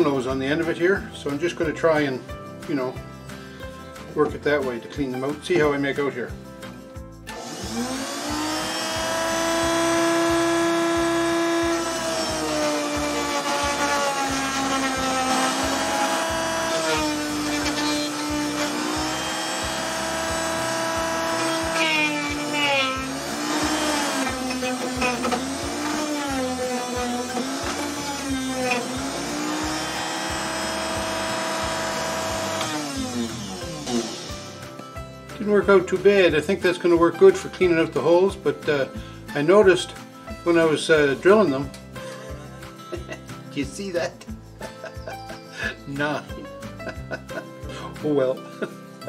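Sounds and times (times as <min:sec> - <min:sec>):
rotary tool whine sanding wood: 0:07.3 - 0:34.7.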